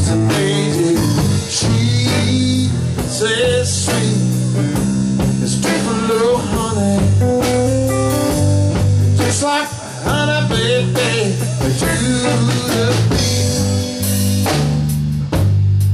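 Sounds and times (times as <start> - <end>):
electric guitar lead: 0.0 - 15.4
drum kit: 0.0 - 15.9
electric bass: 0.0 - 15.9.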